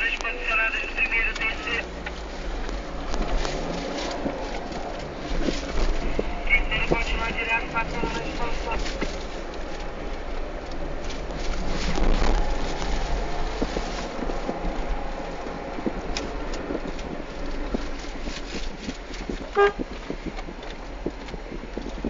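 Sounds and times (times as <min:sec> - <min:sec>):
traffic rumble: 0:00.0 - 0:22.0
car horn toot: 0:19.5 - 0:19.8.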